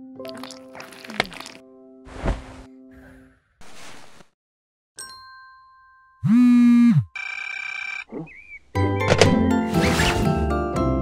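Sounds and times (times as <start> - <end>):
phone ringtone: 7.0 - 8.1.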